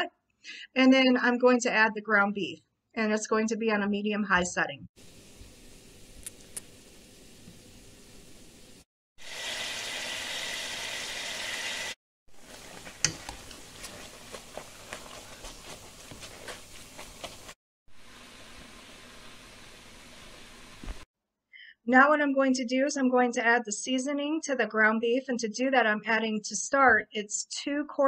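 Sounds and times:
meat sizzling in oil: 0:09.2 - 0:13.8.

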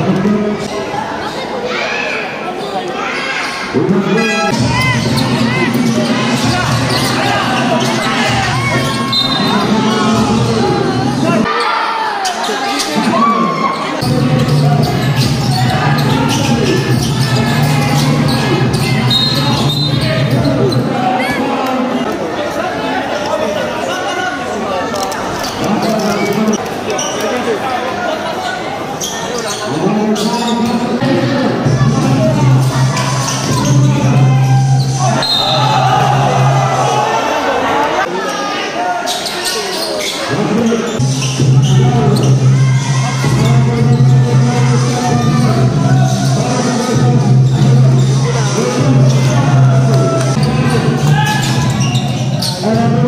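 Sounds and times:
people shouting and chattering: 0:00.0 - 0:53.0
spectators' voices: 0:00.0 - 0:53.0.

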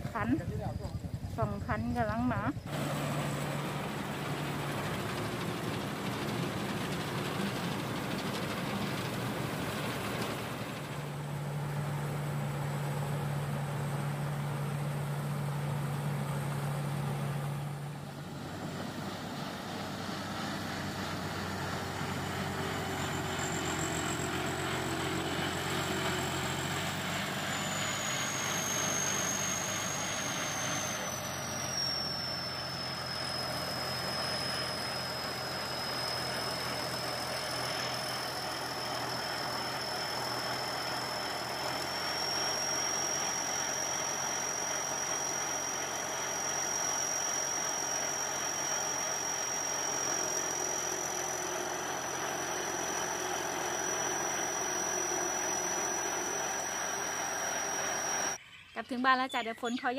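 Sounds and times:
combine harvester engine running: 0:00.0 - 0:58.4
high whine: 0:00.0 - 0:58.4.

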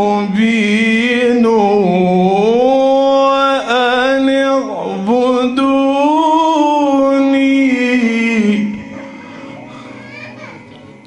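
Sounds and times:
people talking quietly: 0:08.6 - 0:11.0.

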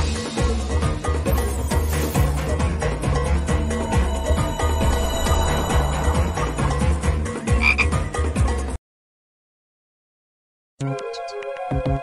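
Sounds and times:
frog croak: 0:07.5 - 0:08.0.

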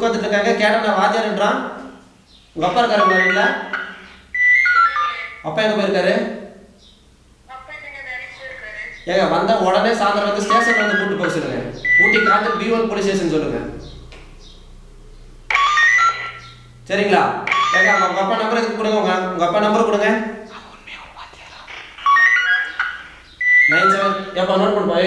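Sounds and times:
man speaking: 0:00.0 - 0:01.9, 0:02.6 - 0:03.8, 0:09.0 - 0:14.0, 0:16.9 - 0:20.5, 0:23.7 - 0:25.0
descending electronic jingle: 0:02.6 - 0:05.4, 0:09.5 - 0:20.0, 0:21.8 - 0:24.8.

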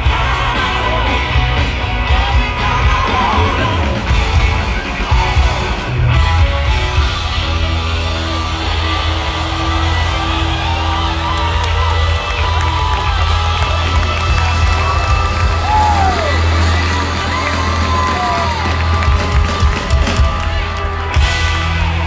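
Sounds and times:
crowd cheering and whooping: 0:00.0 - 0:22.0
live band music with heavy bass: 0:00.0 - 0:22.0.

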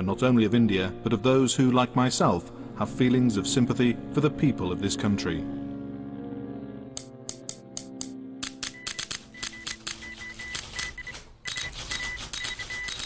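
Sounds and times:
background music: 0:00.0 - 0:13.0
typewriter keys clacking: 0:08.4 - 0:13.0
high beeping tone: 0:08.6 - 0:13.0.

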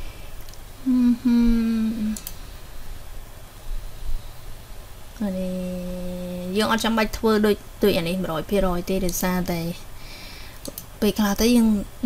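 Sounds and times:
person humming: 0:00.8 - 0:02.3.

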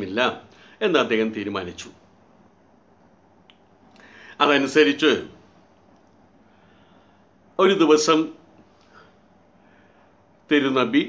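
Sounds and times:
faint click: 0:05.9 - 0:06.3.

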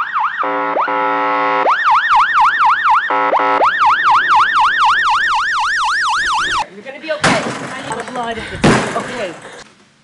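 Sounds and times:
siren yelping: 0:00.0 - 0:06.7.

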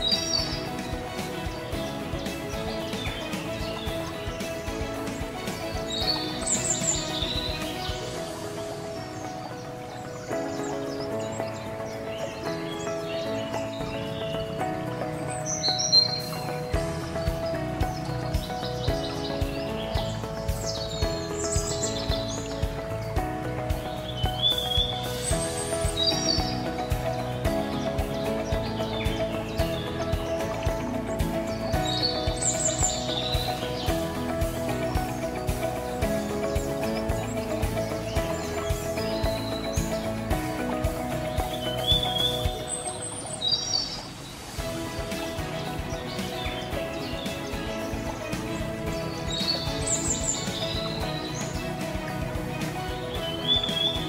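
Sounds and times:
bird chirps: 0:00.0 - 0:54.0
instrumental music with held chords: 0:00.0 - 0:54.0.

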